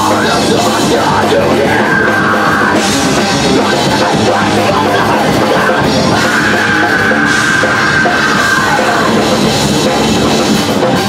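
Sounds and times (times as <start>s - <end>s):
vocalist yelling: 0.0s - 9.3s
metal band playing live: 0.0s - 11.0s.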